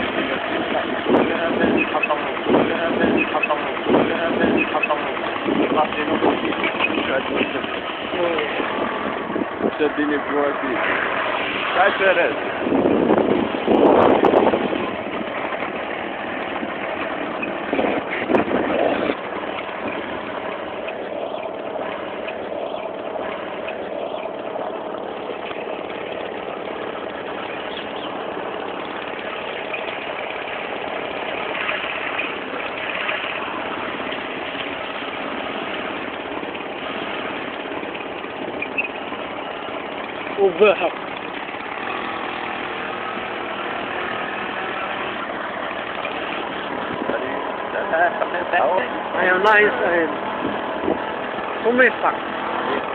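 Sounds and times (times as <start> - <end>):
vehicle engine humming: 0.0 - 52.9.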